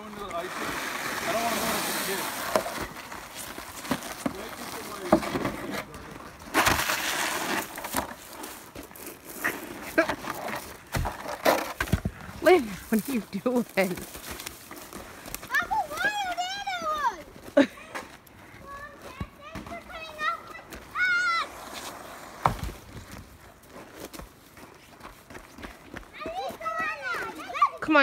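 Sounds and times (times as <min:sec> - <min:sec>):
children shrieking and calling out: 0:15.5 - 0:21.8, 0:26.2 - 0:27.8.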